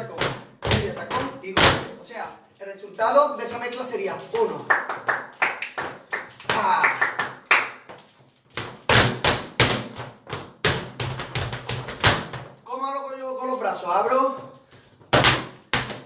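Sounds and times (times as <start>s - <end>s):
flamenco footwork on hard floor: 0.0s - 2.0s, 4.4s - 12.6s, 14.4s - 16.0s.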